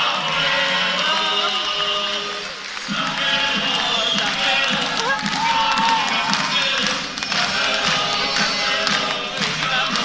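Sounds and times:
men singing in parts: 0.0s - 10.0s.

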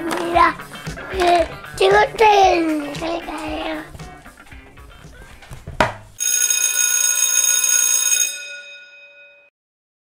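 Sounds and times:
sharp knock: 5.8s - 6.1s
bright bell ringing: 6.2s - 9.5s.

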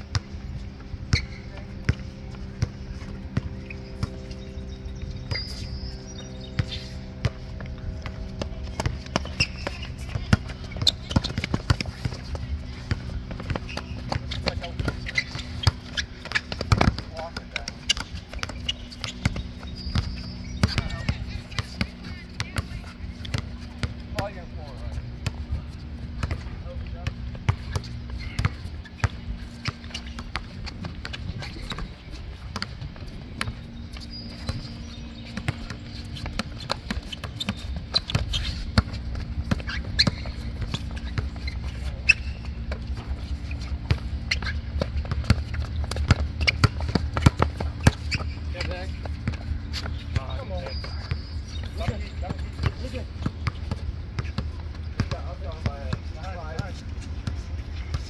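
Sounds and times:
basketball bouncing on concrete: 1.1s - 5.6s, 6.6s - 58.0s.

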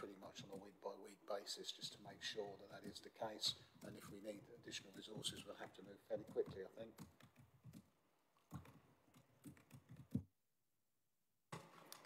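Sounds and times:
typing on laptop keyboard: 6.2s - 10.3s.

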